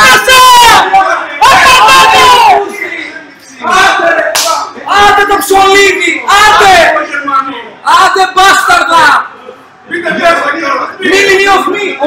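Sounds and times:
men shouting and cheering: 0:00.0 - 0:02.9, 0:03.6 - 0:07.2.

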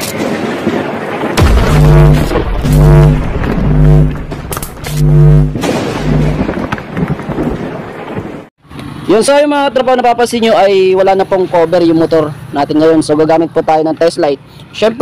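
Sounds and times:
deep synth bass notes: 0:01.4 - 0:06.6
noisy rumble: 0:01.4 - 0:07.0.

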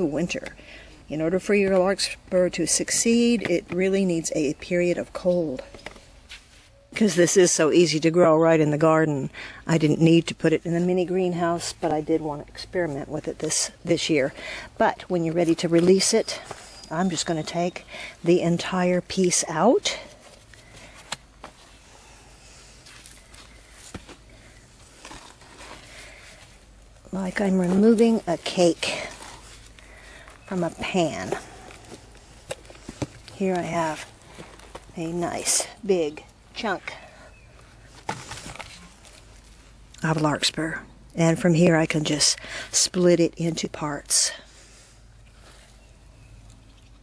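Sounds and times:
low steady hiss: 0:00.0 - 0:47.0
soil and roots crackling: 0:06.9 - 0:44.3.

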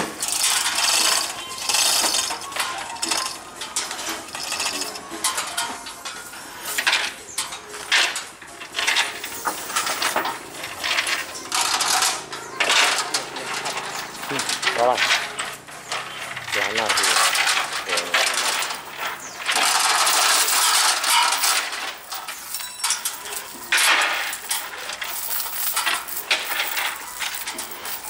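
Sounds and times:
steel chains rattling and clanking: 0:00.0 - 0:28.0.

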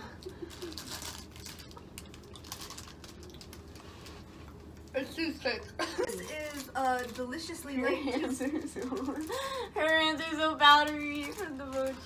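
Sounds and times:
plastic packaging crackling: 0:00.2 - 0:05.0, 0:06.0 - 0:12.0.

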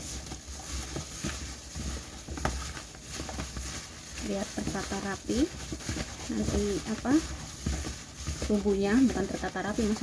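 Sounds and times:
plastic gloves rustling: 0:00.0 - 0:10.0
wet squishing in bowl: 0:00.0 - 0:10.0.

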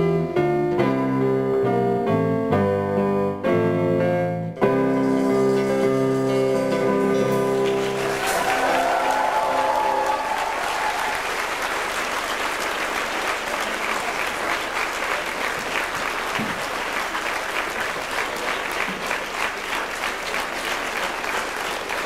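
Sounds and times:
audience applauding: 0:04.9 - 0:22.0.

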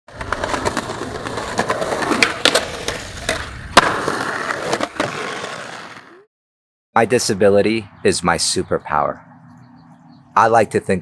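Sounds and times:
skateboard rolling: 0:00.1 - 0:06.2.

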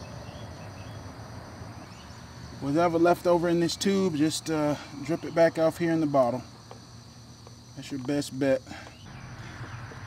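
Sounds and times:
crickets droning: 0:00.0 - 0:10.0
faint bird chirps: 0:08.6 - 0:10.0.

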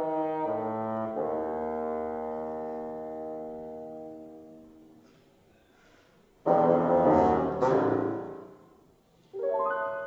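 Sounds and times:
bassoon and piano chord: 0:06.4 - 0:08.4.

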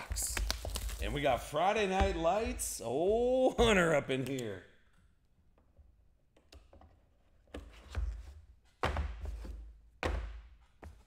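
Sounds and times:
cardboard boxes set on table: 0:07.4 - 0:11.0.

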